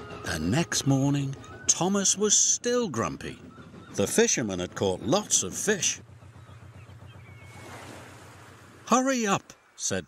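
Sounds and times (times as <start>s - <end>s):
low repeating pulse: 0.0s - 8.8s
sea waves: 3.8s - 10.0s.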